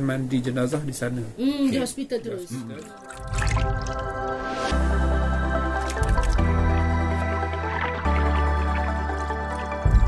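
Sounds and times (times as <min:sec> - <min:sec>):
water-drop and splash effects: 0:02.8 - 0:04.7, 0:05.7 - 0:10.0.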